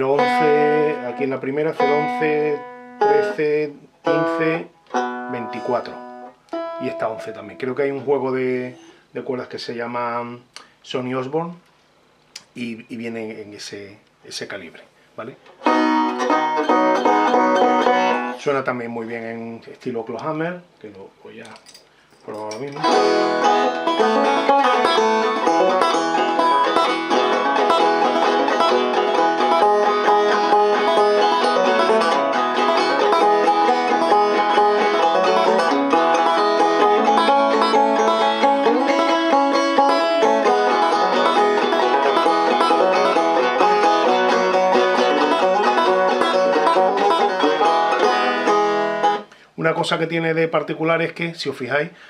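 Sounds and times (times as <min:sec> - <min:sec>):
banjo plucked clawhammer style: 0:00.0 - 0:07.8, 0:15.6 - 0:18.4, 0:22.6 - 0:49.3.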